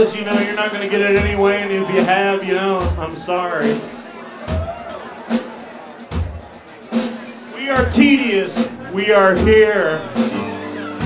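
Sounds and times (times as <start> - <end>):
faint room and crowd noise: 0.0 - 11.0.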